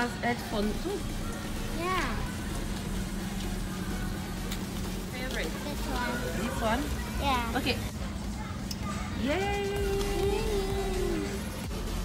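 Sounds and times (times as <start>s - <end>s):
child's voice: 1.7s - 2.4s, 7.0s - 7.6s, 8.4s - 11.4s.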